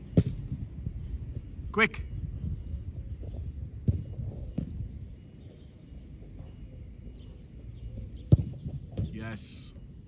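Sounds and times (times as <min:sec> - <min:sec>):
football kicked hard: 0:08.1 - 0:09.1.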